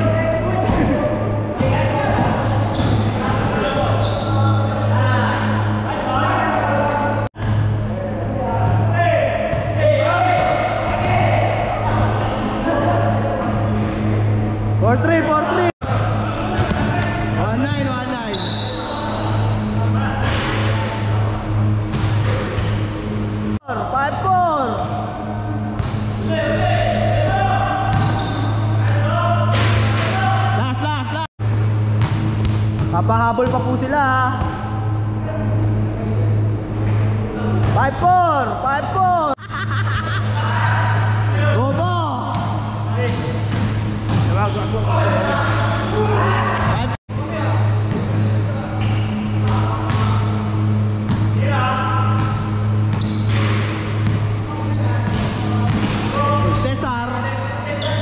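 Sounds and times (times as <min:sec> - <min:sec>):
players' voices: 0:00.0 - 0:31.3, 0:32.2 - 0:58.0
basketball bouncing on wooden court: 0:01.6 - 0:04.0, 0:16.6 - 0:17.0, 0:27.9 - 0:28.5, 0:31.8 - 0:33.7, 0:34.4 - 0:34.7, 0:41.6 - 0:44.3, 0:51.0 - 0:51.3, 0:52.2 - 0:56.6.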